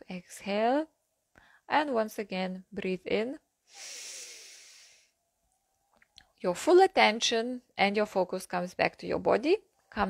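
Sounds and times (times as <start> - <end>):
woman breathing into microphone: 3.7 - 5.1.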